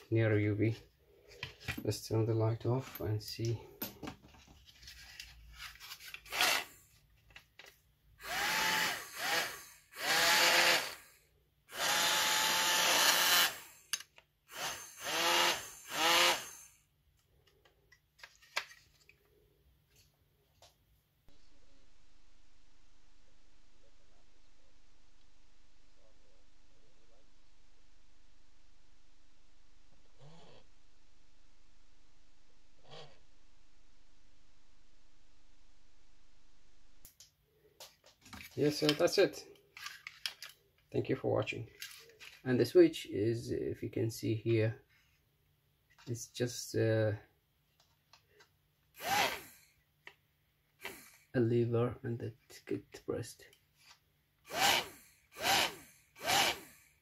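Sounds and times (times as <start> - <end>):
small fan motor whirring: 8.2 - 11.1, 11.7 - 13.8, 14.5 - 16.7, 49.0 - 49.6, 54.5 - 56.9
faint steady hum: 21.3 - 37.2.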